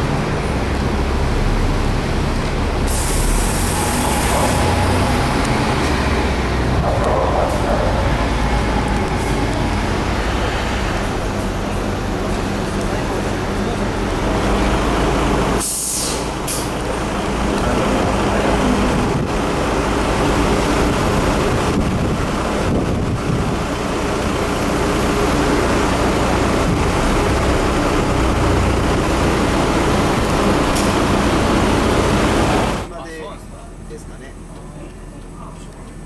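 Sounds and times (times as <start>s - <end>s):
bus diesel engine running: 0.0s - 36.0s
air brake hiss: 2.8s - 4.6s, 15.6s - 16.7s.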